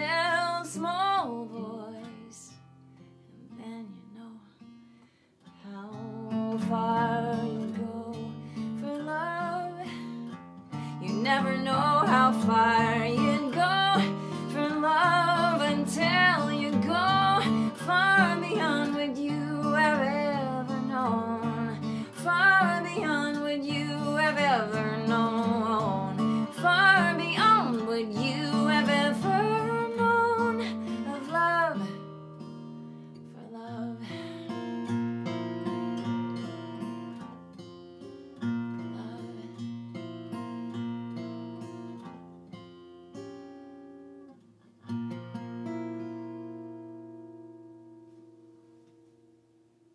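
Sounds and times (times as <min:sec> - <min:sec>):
woman singing: 0:00.0 - 0:02.7, 0:03.3 - 0:04.7, 0:05.5 - 0:32.2, 0:33.2 - 0:34.8, 0:38.5 - 0:39.8
acoustic guitar: 0:00.0 - 0:49.9.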